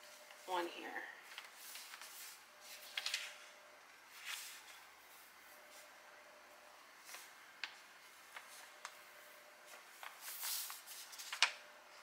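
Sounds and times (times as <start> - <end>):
paper rustling and sliding: 1.3 - 3.5, 4.1 - 5.9, 7.0 - 9.0, 9.6 - 11.6.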